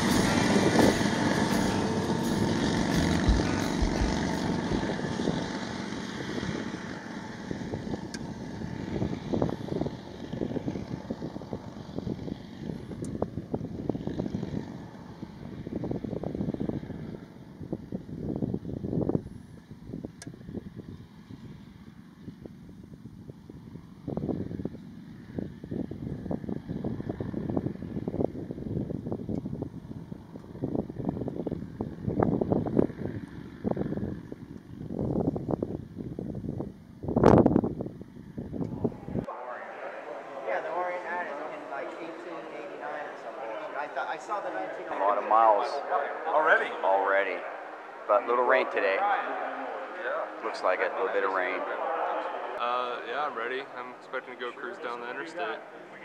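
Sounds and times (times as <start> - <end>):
wind buffeting microphone: 0.0 - 39.3
motorcycle engines pulling away: 0.0 - 56.0.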